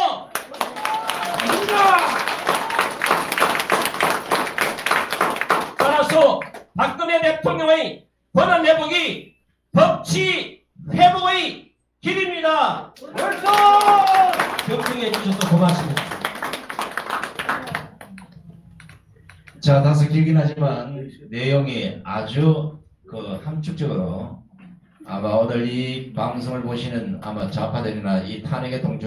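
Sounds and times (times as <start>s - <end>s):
audience applauding: 0.3s - 6.7s, 13.0s - 19.6s
many hands clapping: 0.3s - 6.8s, 13.0s - 19.6s.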